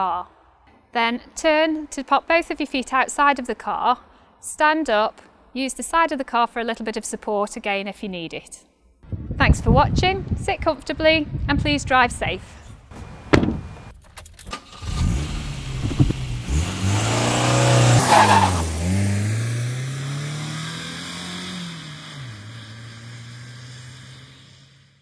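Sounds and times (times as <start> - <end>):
sharp knock: 13.3 - 13.7
car engine revving: 14.5 - 25.0.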